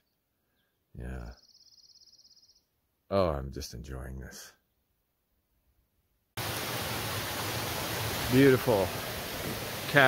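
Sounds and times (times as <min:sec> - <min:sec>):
creek water rushing: 0:06.4 - 0:10.0.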